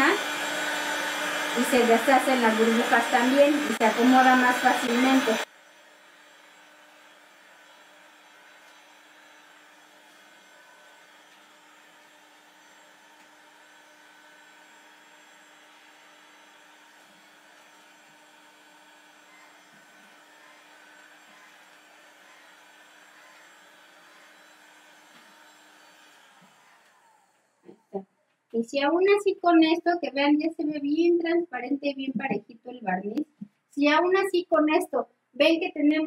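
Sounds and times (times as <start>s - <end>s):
heat gun fan whirring: 0.0s - 27.9s.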